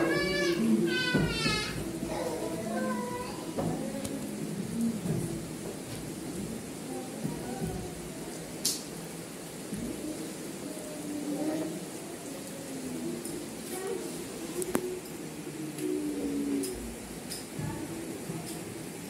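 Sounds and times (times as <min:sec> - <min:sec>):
indistinct voices: 0:00.0 - 0:19.0
steady background hiss: 0:00.0 - 0:19.0.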